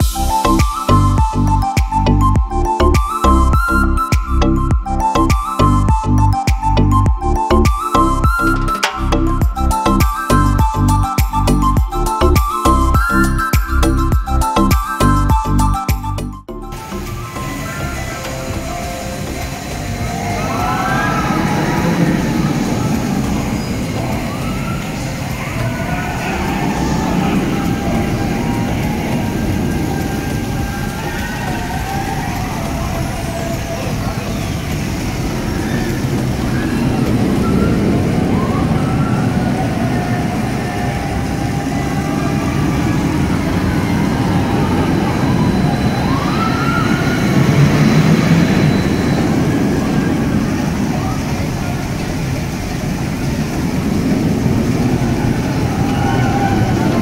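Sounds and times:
roller coaster rumble: 0.0s - 57.0s
people's voices and calls: 16.7s - 57.0s.

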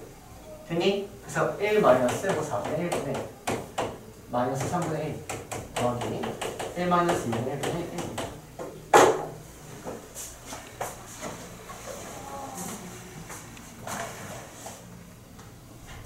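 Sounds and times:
faint voices: 11.5s - 13.6s.

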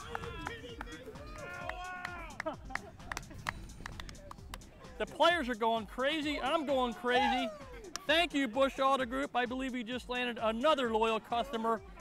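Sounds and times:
men shouting and whooping: 0.0s - 2.9s, 4.1s - 8.9s.

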